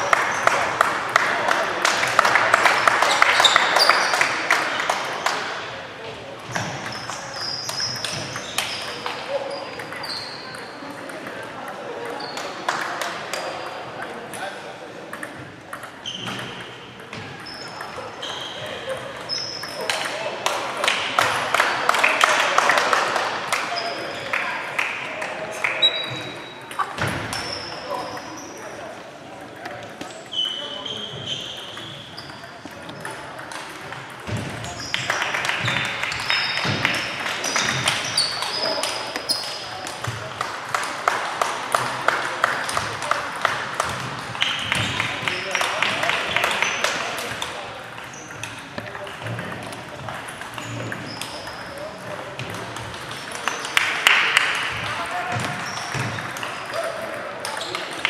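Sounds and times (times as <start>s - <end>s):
shoe squeaks: 3.1s - 4.1s, 6.4s - 10.7s, 16.0s - 19.8s, 25.7s - 28.8s, 30.0s - 33.1s, 37.4s - 39.8s, 48.1s - 48.5s, 50.6s - 51.9s, 55.5s - 56.7s
table tennis balls clicking: 15.0s - 18.1s, 31.5s - 56.7s.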